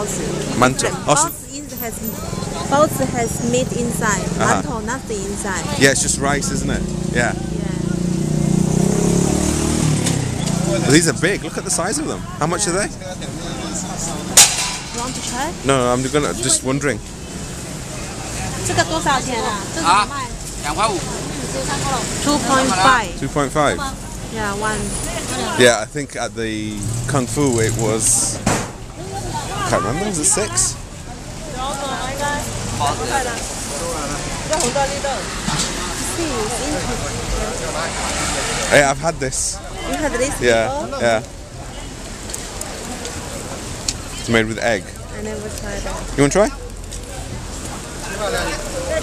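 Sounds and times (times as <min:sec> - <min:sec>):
people talking nearby: 0:00.0 - 0:09.2, 0:09.9 - 0:49.0
low street noise: 0:00.0 - 0:49.0
sharp snap: 0:14.4 - 0:15.0.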